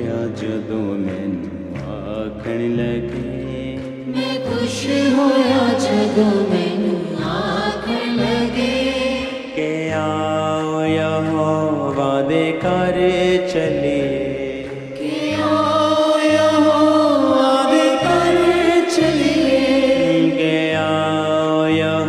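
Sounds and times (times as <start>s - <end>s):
keyboard backing with bass: 0.0s - 22.0s
person singing worship song: 0.0s - 22.0s.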